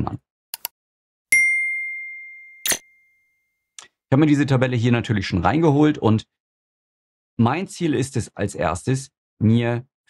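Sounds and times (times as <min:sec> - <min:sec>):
notification bell ding: 0:01.3 - 0:03.5.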